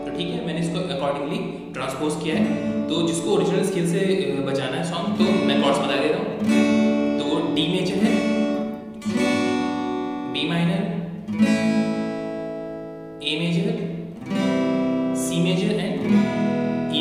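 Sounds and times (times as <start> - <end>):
acoustic guitar strums: 0.0 - 17.0.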